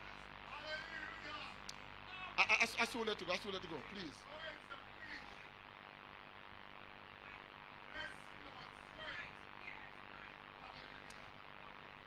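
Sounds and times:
man preaching: 0.5 - 5.4.

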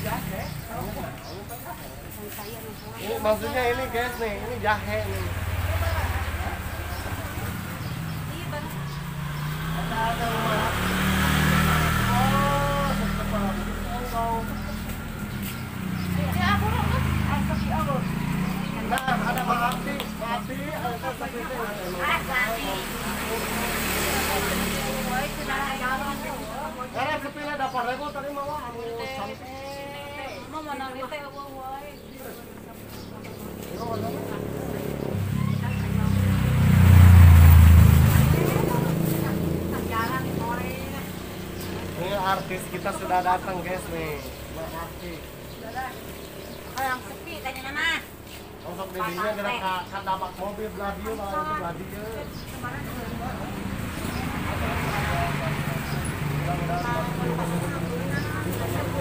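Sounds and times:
motorcycle engine running: 0.0 - 28.9, 31.1 - 59.0
vehicle passing by: 0.0 - 59.0.

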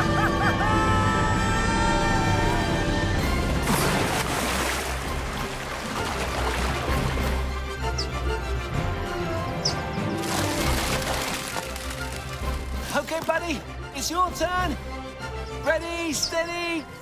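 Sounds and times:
background music: 0.0 - 17.0
water noise: 3.2 - 13.4
splash into water: 3.4 - 7.4, 10.1 - 13.3.

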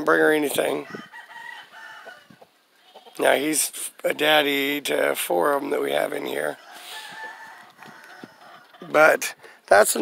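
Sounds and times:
rooster crowing: 0.8 - 2.4, 6.6 - 8.7.

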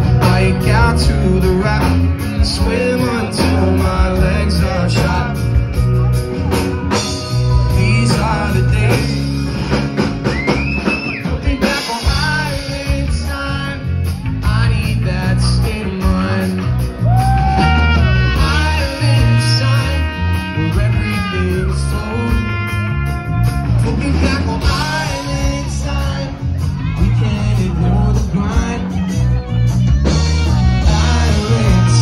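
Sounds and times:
live reggae band playing: 0.0 - 32.0
person singing: 0.0 - 32.0.

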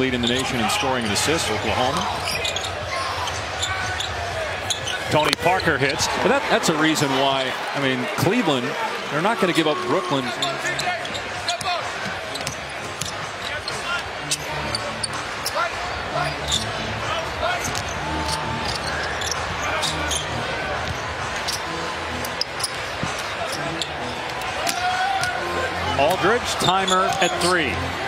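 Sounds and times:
crowd murmur: 0.0 - 28.0.

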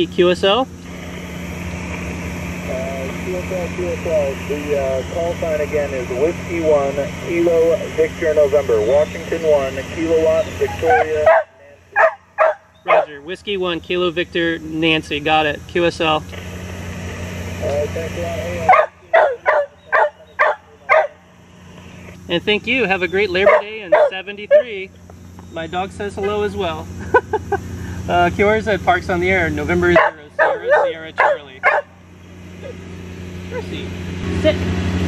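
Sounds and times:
lawn mower engine running: 0.0 - 35.0
radio receiver hiss and hum: 0.7 - 12.0
dog barking: 10.6 - 13.2, 18.6 - 21.2, 23.3 - 24.8, 29.9 - 32.0.

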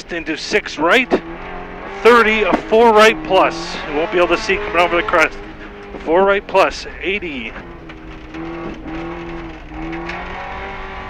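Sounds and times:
car engine running hard: 0.0 - 11.0
tyres rumbling on gravel: 0.0 - 11.0.

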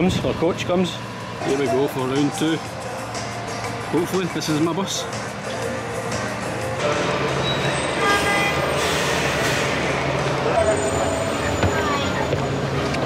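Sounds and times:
background music: 0.0 - 13.0
large vehicle engine running: 0.0 - 13.0
road traffic: 0.0 - 13.0.

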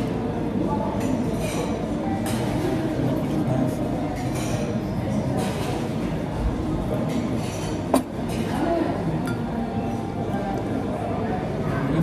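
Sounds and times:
glass clinking on table: 9.2 - 9.5.

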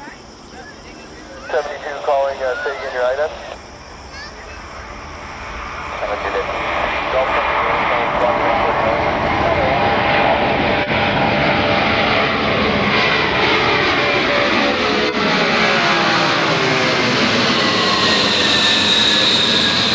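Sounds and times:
jet aircraft engines passing overhead: 0.0 - 19.9.

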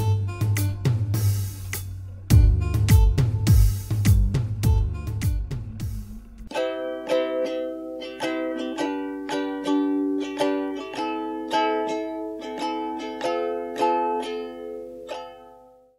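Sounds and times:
plucked string melody: 0.0 - 15.9.

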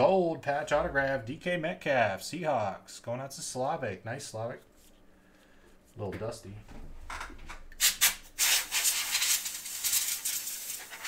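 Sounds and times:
rough hissing rubbing: 7.8 - 11.0.

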